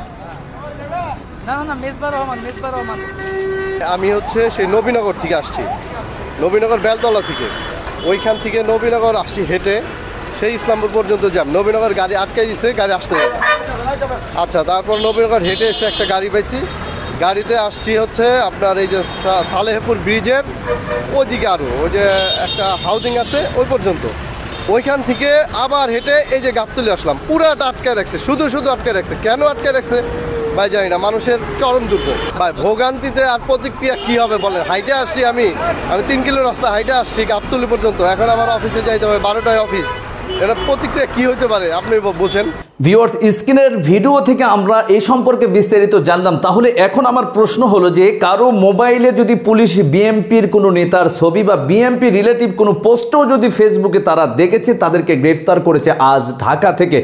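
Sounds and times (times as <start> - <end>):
road traffic rumbling: 0.0 - 43.0
vehicle horn blast: 2.1 - 4.0, 6.9 - 9.0, 13.1 - 13.8, 14.9 - 16.2, 20.6 - 21.2, 22.1 - 23.5, 31.8 - 32.4, 39.4 - 40.8
man speaking: 2.8 - 57.0.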